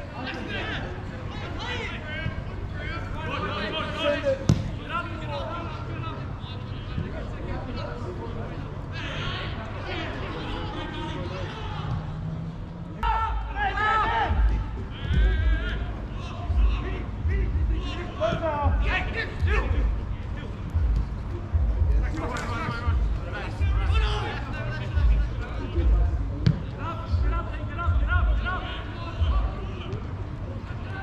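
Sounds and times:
distant shouts of players: 8.8 - 12.4, 13.0 - 20.4.

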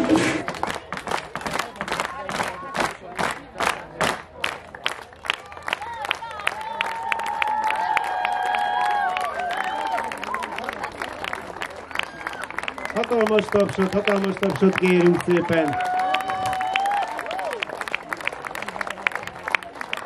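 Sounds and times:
scattered applause: 0.2 - 20.0
rhythmic clapping: 0.4 - 6.7
audience cheering and whooping: 6.7 - 10.5, 15.6 - 17.6.

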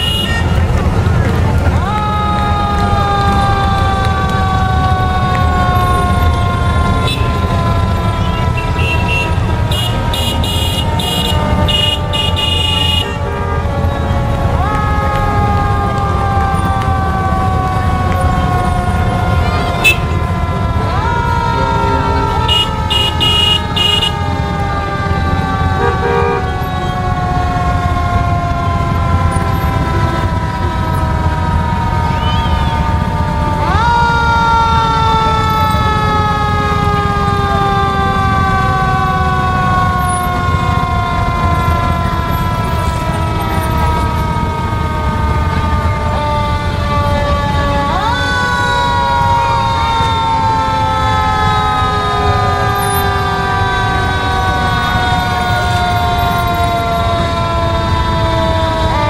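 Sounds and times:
motorcycles passing: 0.0 - 59.0.

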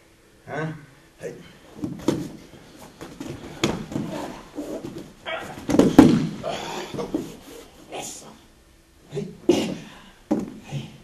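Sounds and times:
bodies thudding on a padded mat: 1.8 - 7.5.

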